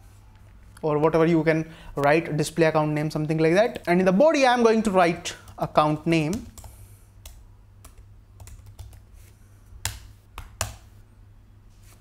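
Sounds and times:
typing on a keyboard: 6.2s - 9.1s.

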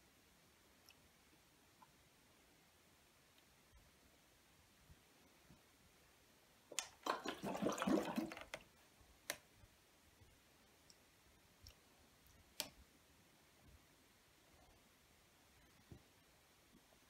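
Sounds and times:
fluid sloshing in plastic bottles: 7.0s - 8.6s.

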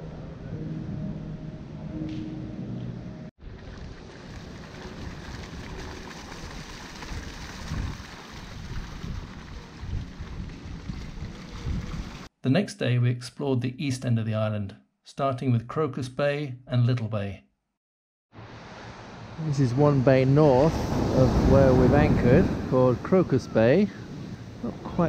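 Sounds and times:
fountain splashing into pool: 3.4s - 12.3s
wind buffeting microphone: 3.7s - 12.3s, 19.8s - 25.0s.

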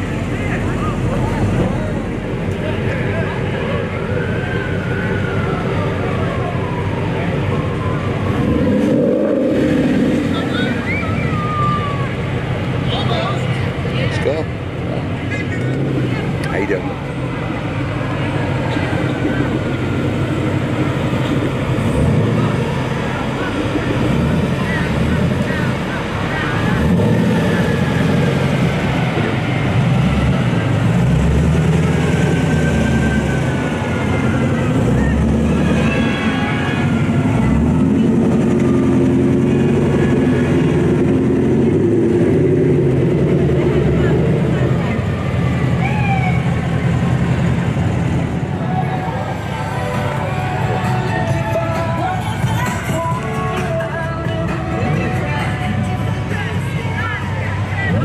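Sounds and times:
voices in background: 0.0s - 8.8s, 9.4s - 29.8s
sports car engines passing: 0.0s - 58.0s.

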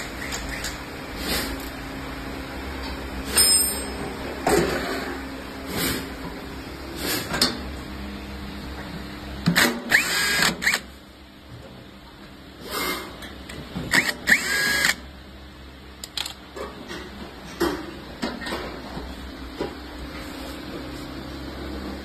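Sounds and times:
cordless drill whining: 9.9s - 10.8s, 14.0s - 15.0s.

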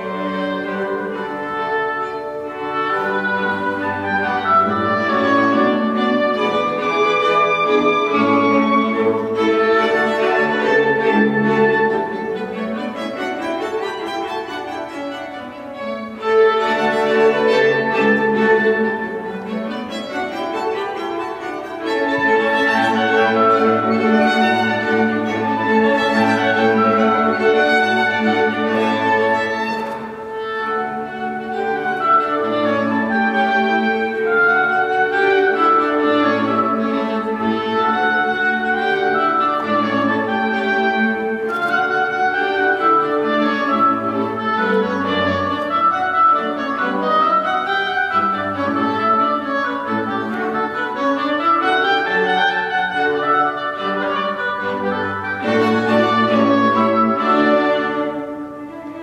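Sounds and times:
bowed strings: 0.0s - 59.0s
clarinet: 0.0s - 59.0s.

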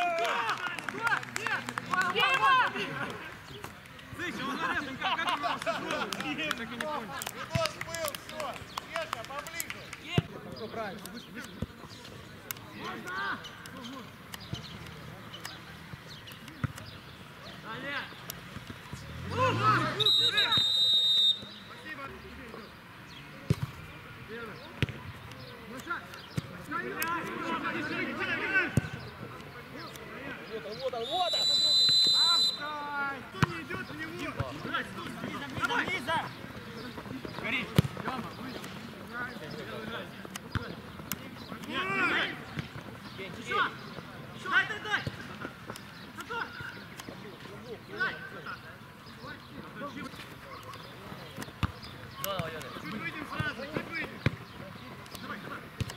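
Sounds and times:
players shouting: 0.0s - 11.7s, 12.5s - 22.6s, 24.2s - 48.7s
referee's whistle blast: 19.9s - 21.6s, 31.0s - 32.7s
football being kicked: 37.6s - 38.1s, 51.6s - 51.8s, 53.4s - 54.5s.

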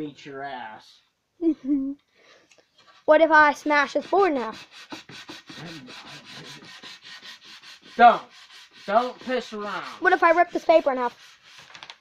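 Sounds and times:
hand-sanding wooden board: 2.9s - 11.8s.

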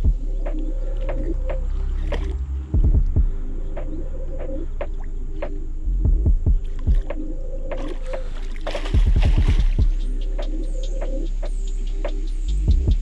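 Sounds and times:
low rumbling handling noise: 0.0s - 13.0s
dull thumps: 6.1s - 10.0s.

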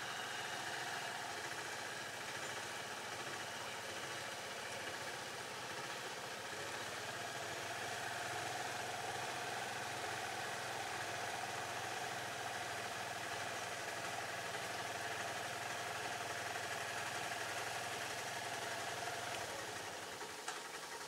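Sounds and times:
small engine idling: 0.0s - 21.0s.

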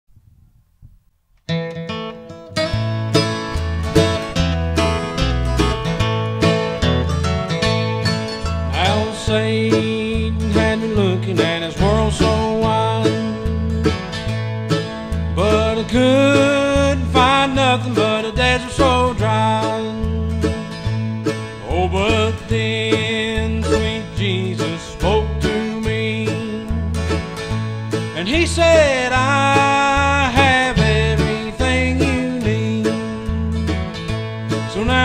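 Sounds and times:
strummed guitar: 1.4s - 35.0s
sliding lead guitar line: 1.5s - 35.0s
bass line: 1.9s - 35.0s.

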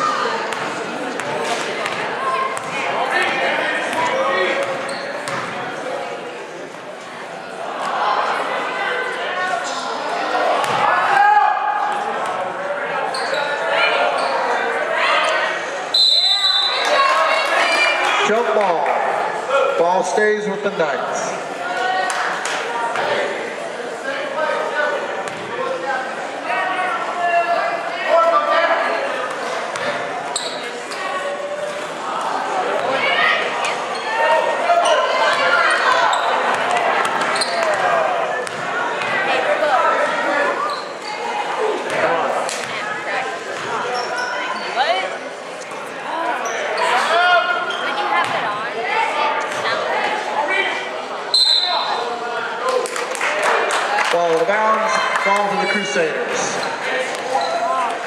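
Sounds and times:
shouts and chatter: 0.0s - 58.0s
basketball bouncing on court: 0.5s - 2.8s, 4.6s - 5.6s, 10.6s - 10.8s, 38.4s - 39.2s.

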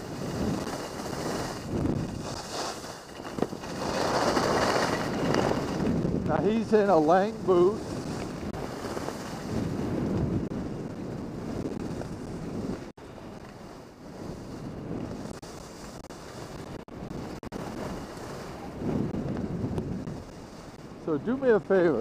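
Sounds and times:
skis hissing on snow: 0.0s - 3.1s, 13.6s - 16.6s
wind rushing over microphone: 0.0s - 22.0s.

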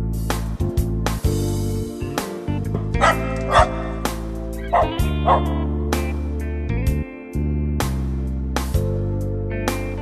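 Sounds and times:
dog barking: 3.0s - 4.1s, 4.7s - 5.6s.

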